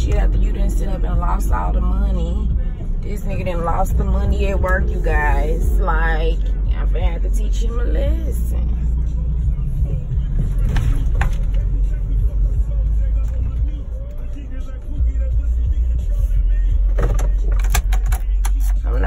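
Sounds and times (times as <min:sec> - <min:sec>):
car cabin rumble: 0:00.0 - 0:19.0.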